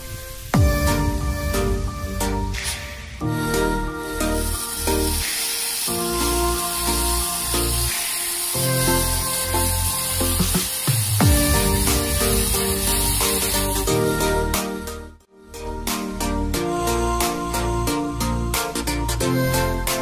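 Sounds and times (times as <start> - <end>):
fountain fireworks hissing: 0.0 - 14.6
electronic music with steady beat: 0.0 - 20.0.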